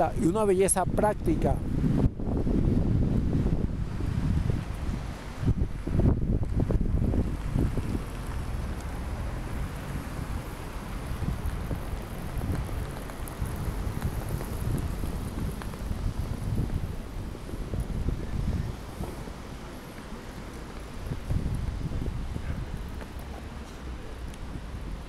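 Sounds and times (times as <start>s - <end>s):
street traffic: 0.0s - 25.0s
wind buffeting microphone: 0.0s - 25.0s.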